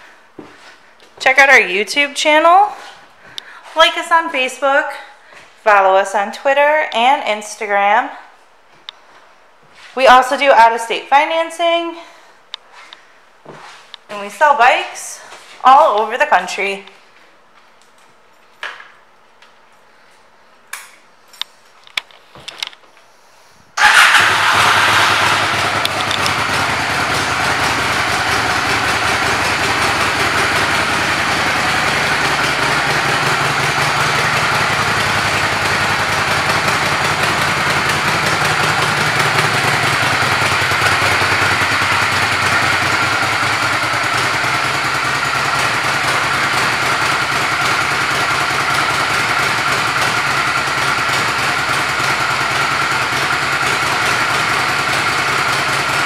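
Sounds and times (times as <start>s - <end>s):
motorcycle engine idling: 23.8s - 56.0s.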